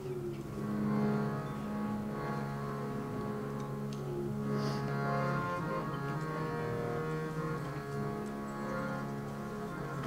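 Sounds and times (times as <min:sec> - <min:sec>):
harmonium chord: 0:00.5 - 0:10.0.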